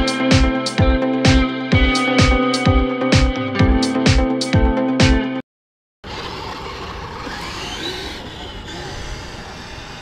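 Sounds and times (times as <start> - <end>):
toy truck rushing noise: 6.0 - 10.0.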